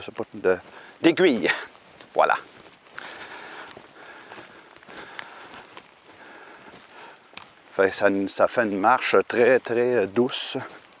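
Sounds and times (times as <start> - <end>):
footsteps on needle-covered trail: 0.0 - 11.0.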